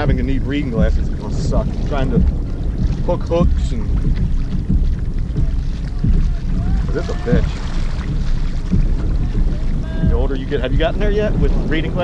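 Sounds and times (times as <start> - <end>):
small waves lapping against hull: 0.0 - 12.0
wind buffeting microphone: 0.0 - 12.0.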